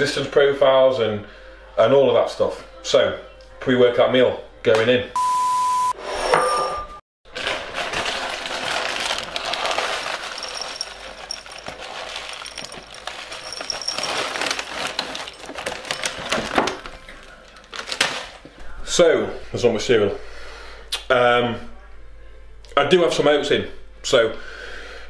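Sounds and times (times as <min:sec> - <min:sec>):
cereal rattling into a bowl: 0:07.3 - 0:18.4.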